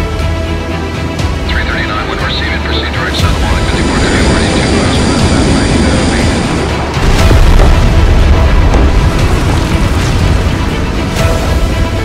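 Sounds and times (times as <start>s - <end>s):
cinematic trailer music: 0.0s - 12.0s
low aircraft rumble: 1.4s - 12.0s
loud boom: 7.0s - 10.4s.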